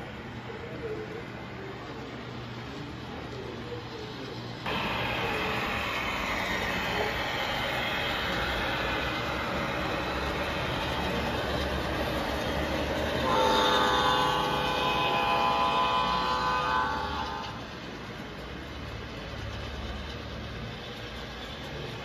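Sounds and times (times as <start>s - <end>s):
model train rumbling: 0.0s - 22.0s
electronic multi-note train horn: 8.8s - 18.0s.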